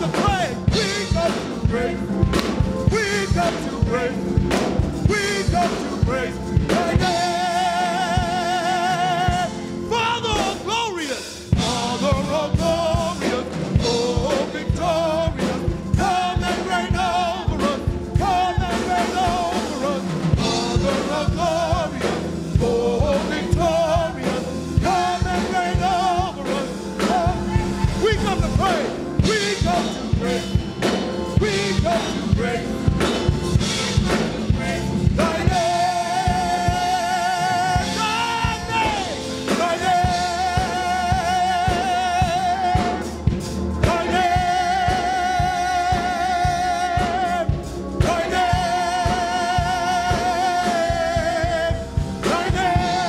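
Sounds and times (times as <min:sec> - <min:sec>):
choir singing with vibrato: 0:00.0 - 0:53.0
steady drum beat: 0:00.0 - 0:53.0.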